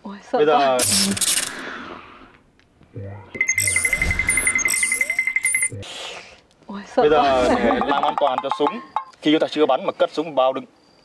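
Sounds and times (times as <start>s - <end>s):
pulsing high electronic ringing tone: 3.4s - 5.8s.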